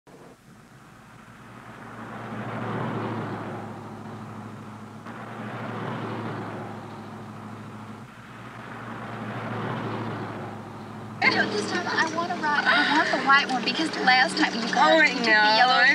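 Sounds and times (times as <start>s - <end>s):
cars driving past: 0.2s - 15.9s.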